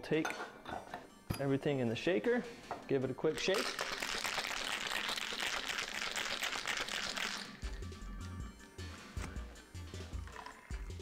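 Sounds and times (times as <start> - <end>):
bass line background music: 1.0 - 11.0
ice rattling in cocktail shaker: 3.4 - 7.6.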